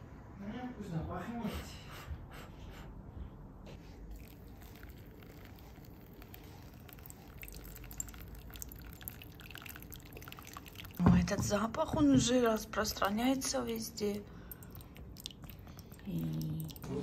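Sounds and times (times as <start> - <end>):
water trickling into coffee filter: 4.1 - 11.8, 12.4 - 17.0.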